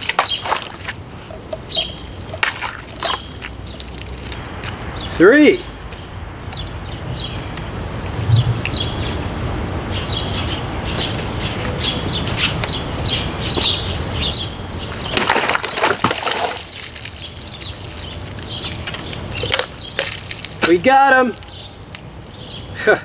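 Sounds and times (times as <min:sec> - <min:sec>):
birds chirping: 0:00.0 - 0:23.0
insect trilling: 0:00.0 - 0:23.0
low steady rumble: 0:06.9 - 0:12.4.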